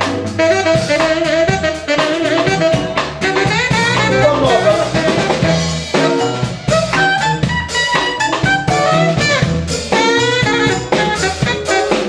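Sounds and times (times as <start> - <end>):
drum kit: 0.0 - 12.0
electric bass guitar: 0.0 - 12.0
saxophone melody: 0.0 - 12.0.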